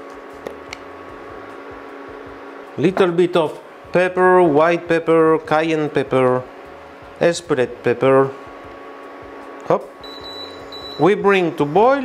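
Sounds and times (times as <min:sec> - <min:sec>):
induction hob beeping: 0:10.0 - 0:12.0.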